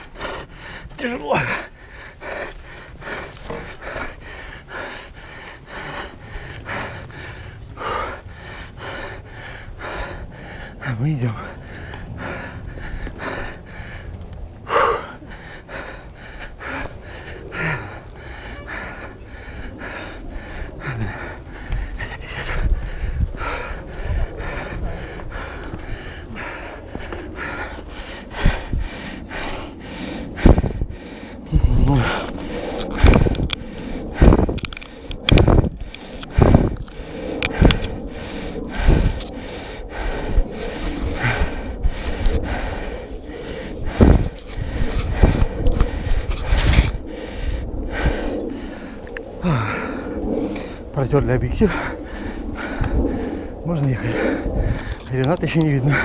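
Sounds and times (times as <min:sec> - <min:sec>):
person breathing hard: 0:00.0 - 0:56.0.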